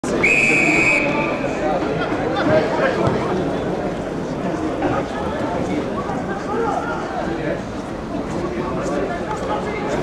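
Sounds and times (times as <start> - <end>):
referee's whistle blast: 0.2 - 1.4.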